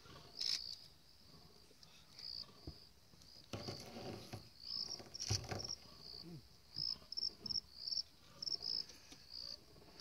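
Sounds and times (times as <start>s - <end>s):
crickets trilling: 1.9s - 10.0s.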